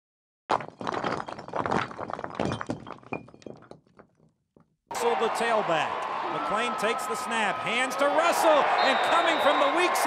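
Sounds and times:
crumbling bricks clattering: 0:00.5 - 0:04.7.

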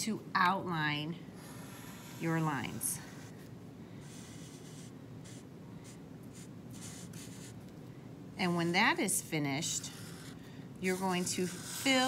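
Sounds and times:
marker drawing on paper: 0:01.4 - 0:03.4, 0:04.0 - 0:07.6, 0:08.4 - 0:12.0.

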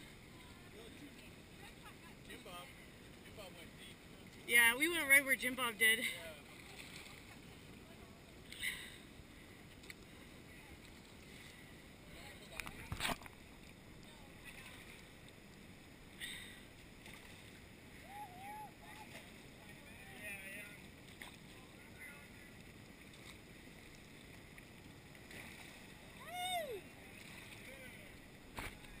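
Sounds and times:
paddles knocking and splashing: 0:20.8 - 0:21.7.

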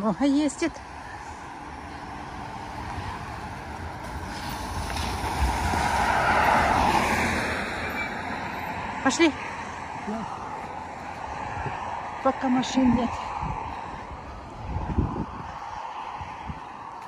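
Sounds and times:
cars passing on wet road: 0:00.0 - 0:17.0.

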